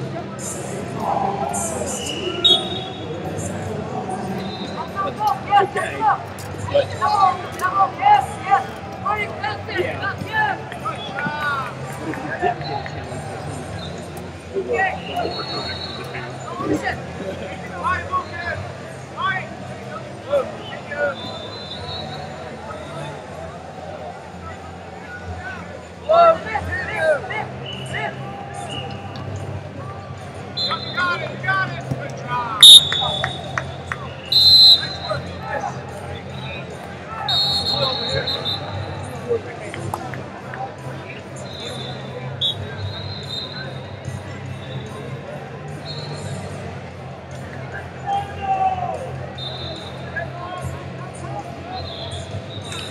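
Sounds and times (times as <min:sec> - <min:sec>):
referee whistle blasts: 0:02.0 - 0:03.0, 0:32.6 - 0:33.5, 0:34.3 - 0:35.1, 0:37.3 - 0:38.7, 0:41.5 - 0:43.6, 0:49.4 - 0:50.0.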